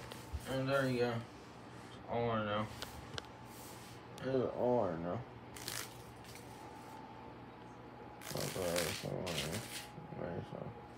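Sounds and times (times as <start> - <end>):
faint steady hum: 0.0 - 10.9.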